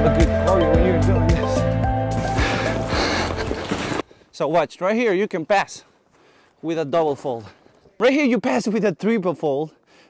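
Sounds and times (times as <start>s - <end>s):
background music with bass line: 0.0s - 3.5s.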